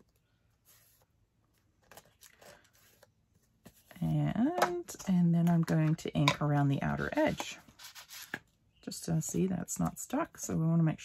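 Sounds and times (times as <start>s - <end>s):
paper rustling: 7.0s - 8.4s.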